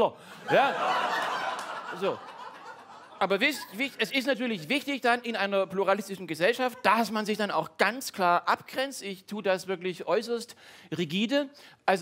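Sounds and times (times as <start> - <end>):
audience laughing: 0.3 - 4.4.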